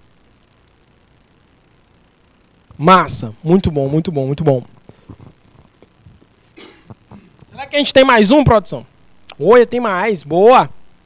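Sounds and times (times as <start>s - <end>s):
man coughing faintly: 6.6s - 7.4s.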